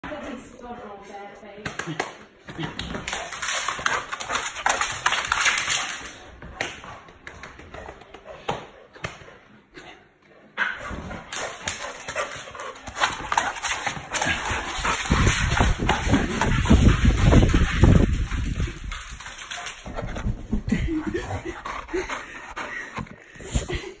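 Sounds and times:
dog vocal noises: 0:07.8 - 0:23.8.

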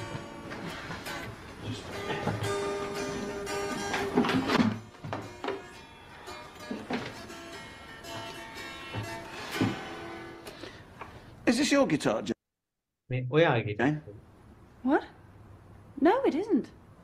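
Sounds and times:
electric guitar playing: 0:00.0 - 0:10.8.

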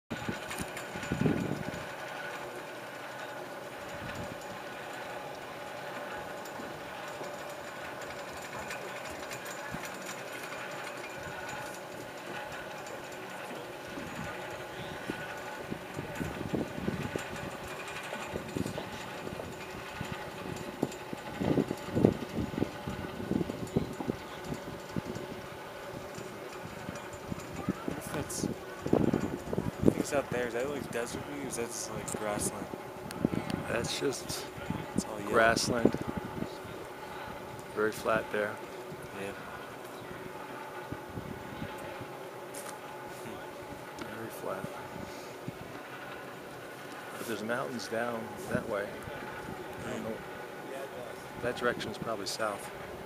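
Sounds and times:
machinery hum with held tones: 0:00.1 - 0:53.0.

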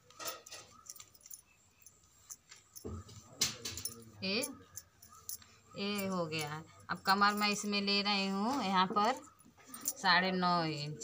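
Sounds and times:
bangles clinking: 0:00.0 - 0:11.0.

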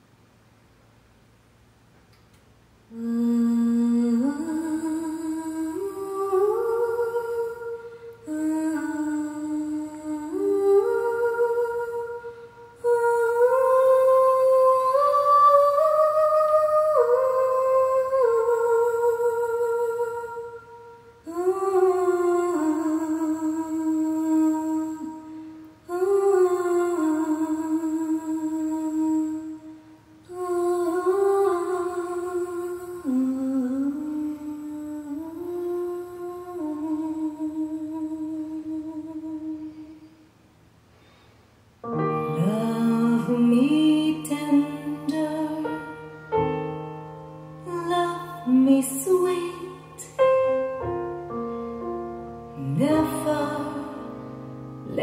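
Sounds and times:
soft melody over loudspeakers: 0:41.8 - 0:55.0.

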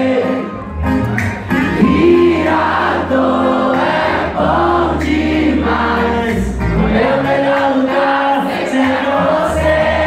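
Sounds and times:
crowd singing together: 0:00.0 - 0:10.0
live pop band playing: 0:00.0 - 0:10.0.

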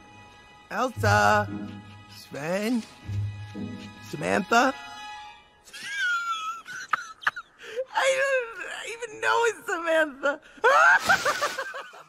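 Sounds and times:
soft film score music: 0:00.0 - 0:08.6
character wordless vocal sounds: 0:00.7 - 0:03.0.

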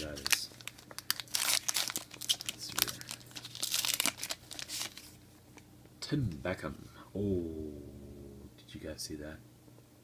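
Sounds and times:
trading cards rustling and clicking: 0:00.0 - 0:05.2.

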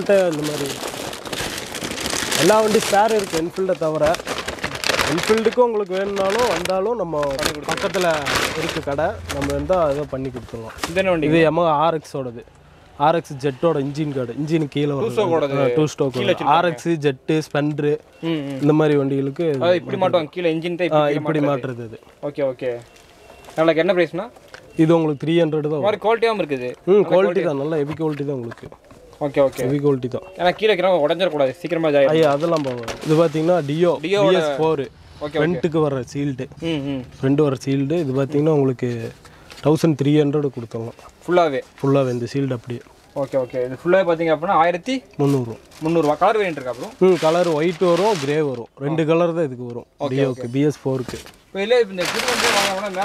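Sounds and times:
man talking: 0:00.0 - 0:00.9, 0:02.3 - 0:22.9, 0:23.6 - 0:53.0
person talking: 0:29.3 - 0:40.9.

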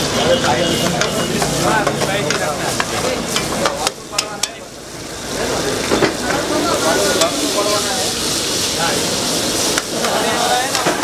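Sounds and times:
light frying sizzle: 0:00.0 - 0:11.0.

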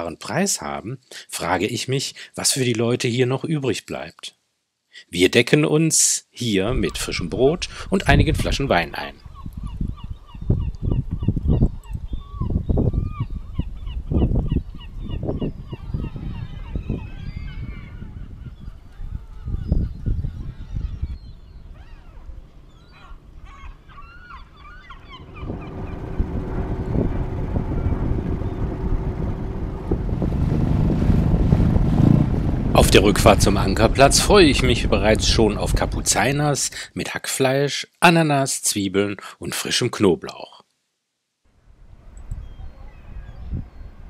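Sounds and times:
birds calling: 0:09.0 - 0:29.9
low rumbles: 0:17.9 - 0:36.6
outboard motor running: 0:22.6 - 0:33.8.

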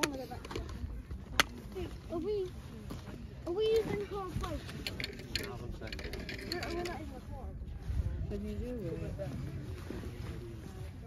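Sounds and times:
small clicks and rattles: 0:03.7 - 0:07.2.

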